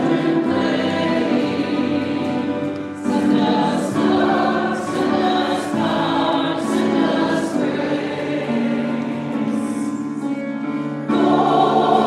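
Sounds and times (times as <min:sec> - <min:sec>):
congregation singing a hymn: 0:00.0 - 0:12.0.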